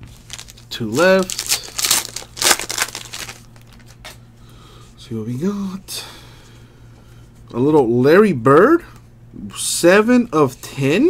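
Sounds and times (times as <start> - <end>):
card pack wrapper tearing: 0.1 - 4.2.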